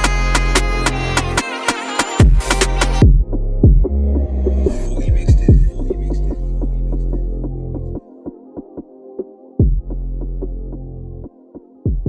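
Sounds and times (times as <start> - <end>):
drill beat: 0.0 - 7.9
deep bass notes: 2.3 - 8.0, 9.6 - 11.3.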